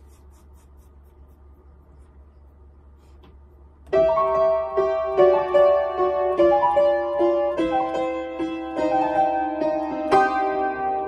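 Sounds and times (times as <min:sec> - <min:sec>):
soft rustling of hands and clothing: 0:00.0 - 0:03.8
steady low hum: 0:00.0 - 0:06.1.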